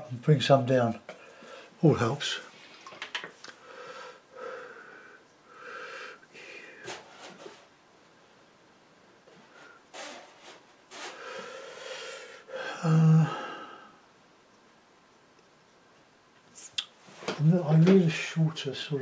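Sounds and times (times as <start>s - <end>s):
man breathing: 1.2s - 1.8s, 3.5s - 7.1s, 11.0s - 14.0s.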